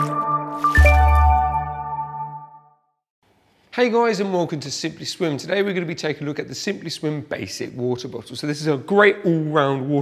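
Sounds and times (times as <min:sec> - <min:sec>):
water-drop sound effects: 0:00.0 - 0:01.8
musical logo sting: 0:00.0 - 0:02.7.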